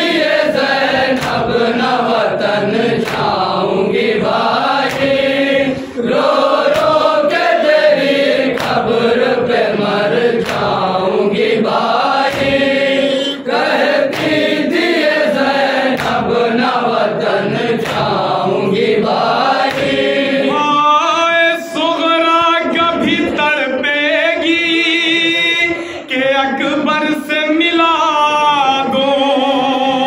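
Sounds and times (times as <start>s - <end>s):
lead voice on a microphone: 0.0s - 18.8s, 19.7s - 30.0s
men chanting a lament: 0.0s - 30.0s
chest-beating strikes: 12.2s - 14.5s.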